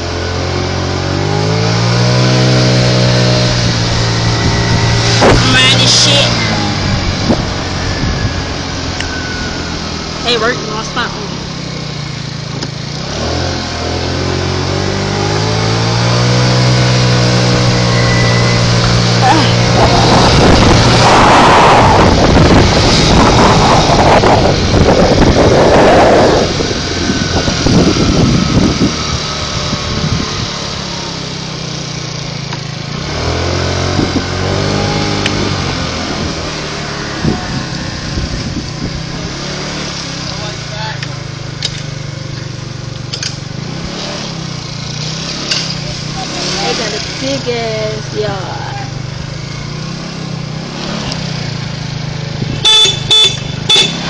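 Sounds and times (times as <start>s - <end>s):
vehicle engine accelerating: 0.0s - 54.0s
loud rushing noise: 1.7s - 12.3s, 15.0s - 30.4s.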